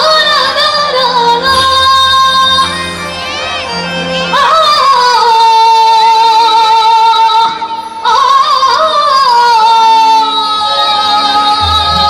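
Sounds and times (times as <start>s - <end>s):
band accompaniment: 0.0s - 8.9s, 10.6s - 12.0s.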